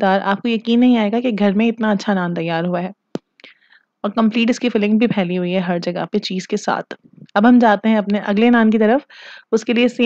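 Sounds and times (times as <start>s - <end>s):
woman speaking: 0.0s - 3.0s, 4.0s - 10.0s.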